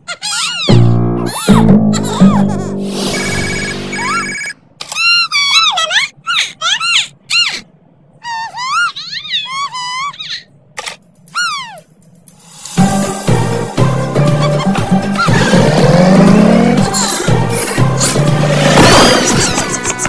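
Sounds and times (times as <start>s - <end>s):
telephone ringing: 3.1s - 4.6s
high-pitched cartoon voices: 3.8s - 10.6s.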